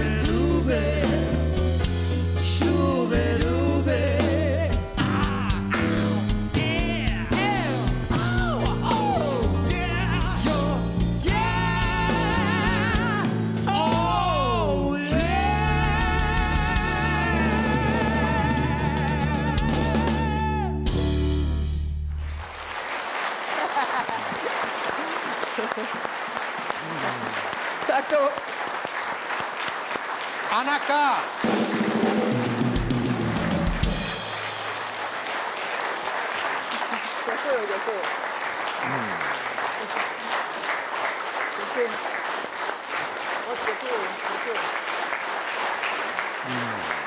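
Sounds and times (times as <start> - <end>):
band playing: 0.0 - 22.6, 30.5 - 47.0
audience applauding: 15.9 - 20.2, 22.1 - 47.0
audience cheering: 22.2 - 47.0.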